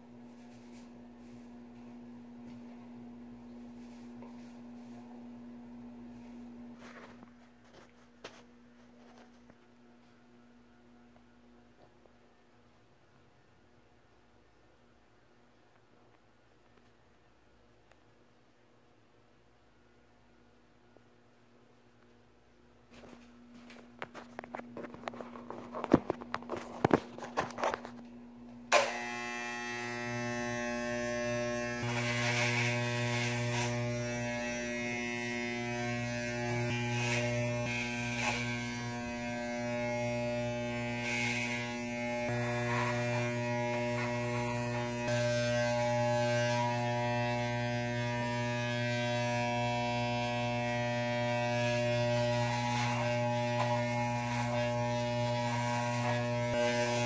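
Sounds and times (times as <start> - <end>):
electric hair clippers buzzing: 28.7 - 57.0.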